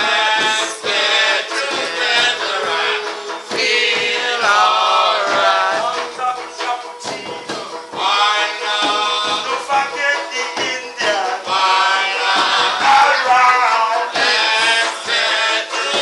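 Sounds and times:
hand drums: 0.0s - 16.0s
man singing: 0.0s - 16.0s
strummed banjo and guitar: 0.0s - 16.0s.

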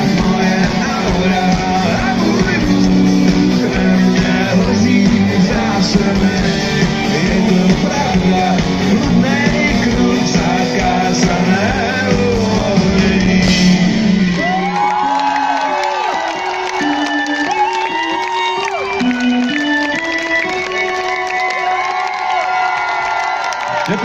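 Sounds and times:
live rock band: 0.0s - 21.8s
audience cheering and whooping: 12.8s - 19.5s, 20.7s - 24.0s.

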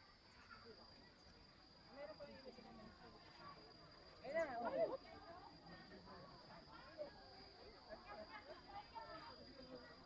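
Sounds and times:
faint chatter of voices: 0.0s - 10.0s.

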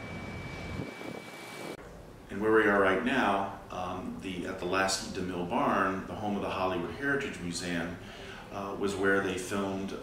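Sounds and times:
thin high whine: 0.0s - 4.1s.

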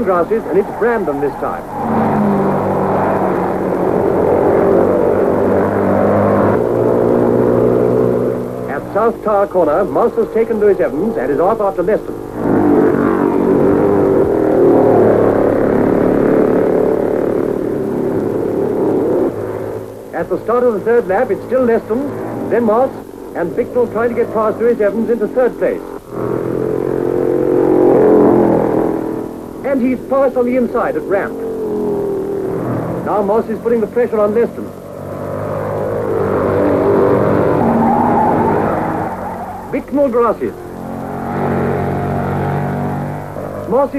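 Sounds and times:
racing cars passing at high revs: 0.0s - 43.9s.

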